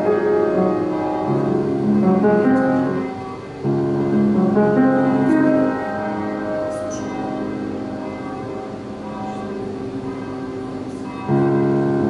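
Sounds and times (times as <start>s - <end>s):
grand piano playing softly: 0.0s - 12.0s.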